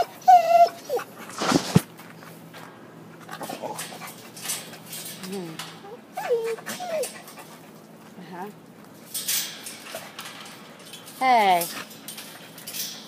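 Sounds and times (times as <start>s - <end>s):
dog whining: 0.0s - 1.2s, 5.4s - 7.6s
faint scuffling: 0.6s - 5.5s.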